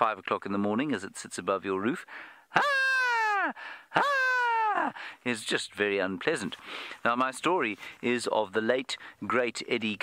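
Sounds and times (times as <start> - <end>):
man imitating bird call: 2.5 - 4.9.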